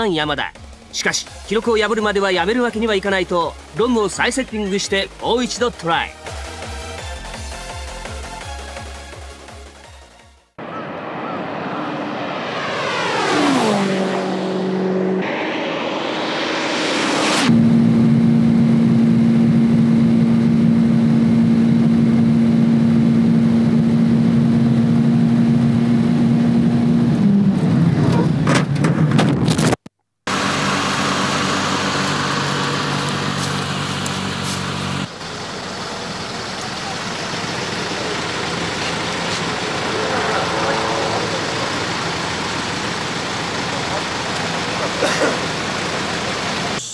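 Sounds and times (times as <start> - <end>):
wind rush: 10.6 - 18.9
rushing noise: 10.6 - 19.4, 38.1 - 44.6
turbocharged engine at high revs: 11.7 - 28.5, 30.3 - 46.9.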